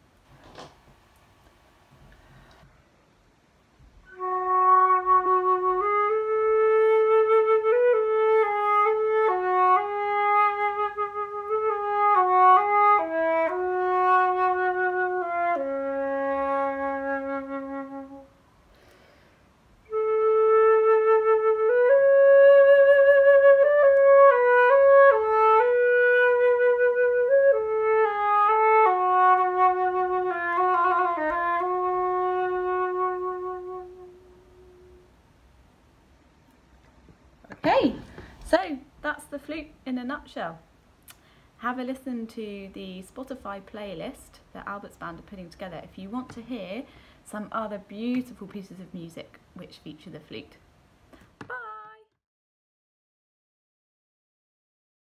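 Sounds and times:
solo flute slow melody: 0:04.0 - 0:18.4, 0:19.8 - 0:35.2.

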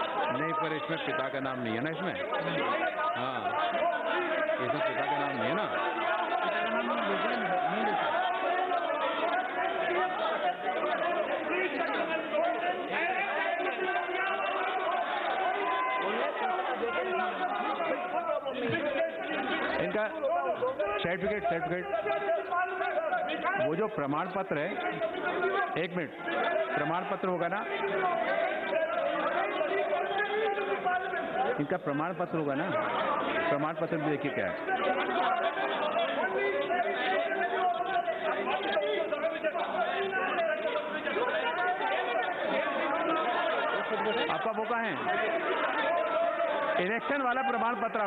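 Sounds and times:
overlapping chatter of many voices: 0:00.0 - 0:48.0.

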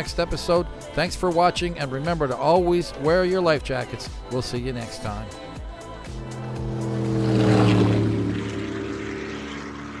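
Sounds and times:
powerboat engines passing by: 0:05.4 - 0:10.0.

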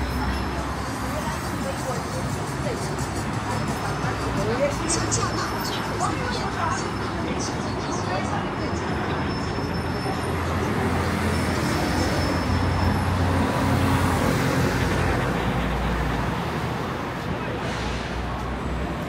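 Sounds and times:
road noise of passing cars: 0:00.0 - 0:19.0
vehicle engine rumble: 0:00.0 - 0:19.0.

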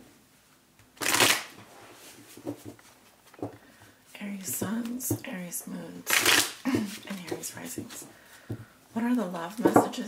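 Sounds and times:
cards shuffling: 0:01.0 - 0:03.5.

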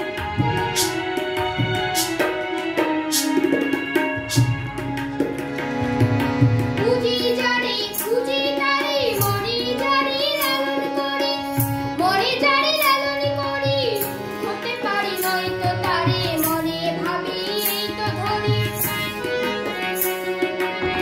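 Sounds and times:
harmonium: 0:00.0 - 0:21.0
keyboard: 0:00.0 - 0:21.0
boy singing folk-style song: 0:06.7 - 0:20.2.

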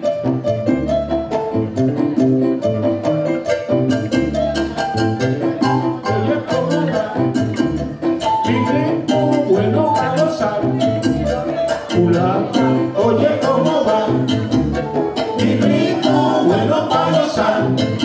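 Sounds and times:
latin jazz band playing live: 0:00.0 - 0:18.0.

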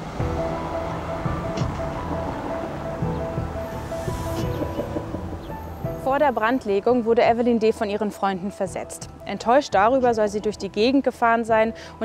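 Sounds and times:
low held tones: 0:00.2 - 0:06.6.

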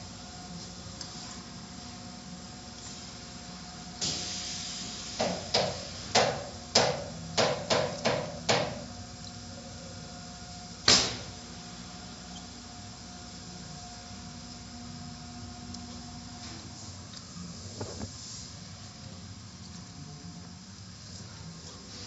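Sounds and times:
car wash machinery humming: 0:00.0 - 0:22.0.

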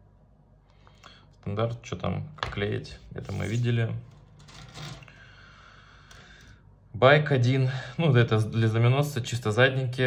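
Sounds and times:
low steady hum: 0:00.0 - 0:10.0
plastic and paper handling: 0:02.4 - 0:05.1.

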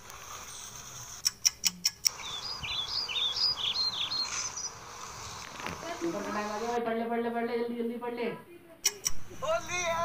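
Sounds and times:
birds chirping: 0:00.2 - 0:06.8, 0:09.4 - 0:10.0
sharp clicks: 0:01.2 - 0:02.2, 0:08.8 - 0:09.3.

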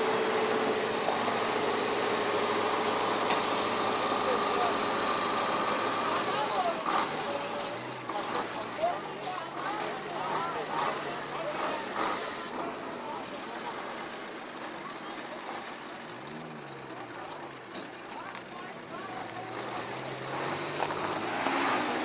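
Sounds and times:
truck diesel engine humming: 0:00.0 - 0:22.0
people talking: 0:00.8 - 0:22.0.

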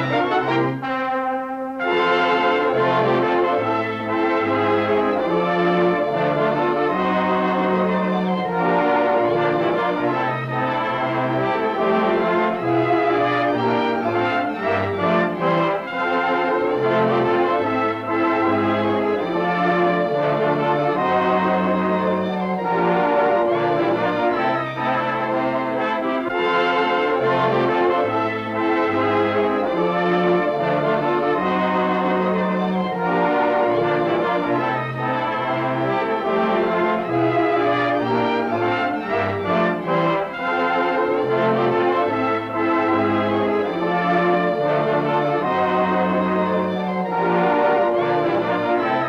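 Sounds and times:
orchestral music with brass: 0:00.0 - 0:49.0.

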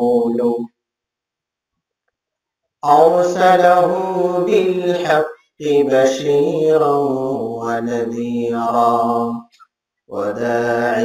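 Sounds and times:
man chanting melodically: 0:00.0 - 0:00.7, 0:02.8 - 0:09.5, 0:10.1 - 0:11.0.

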